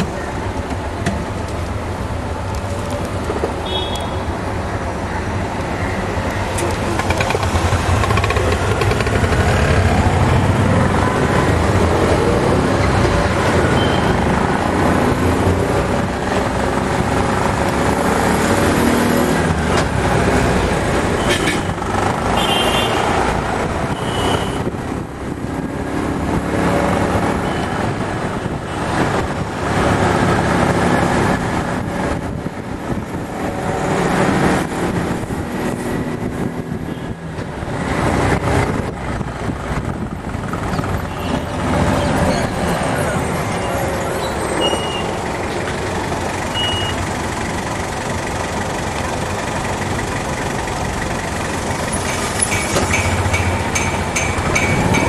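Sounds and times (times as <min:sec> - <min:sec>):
vehicle engines running: 0:00.0 - 0:55.0.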